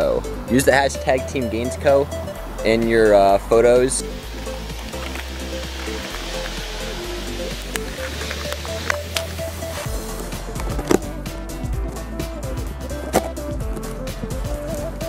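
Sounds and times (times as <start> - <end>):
background music with bass: 0.0 - 15.0
cardboard cracking: 4.3 - 9.9.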